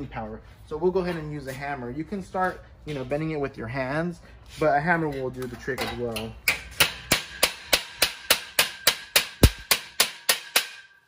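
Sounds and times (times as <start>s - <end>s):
hammer striking metal plate: 6.5s - 11.0s.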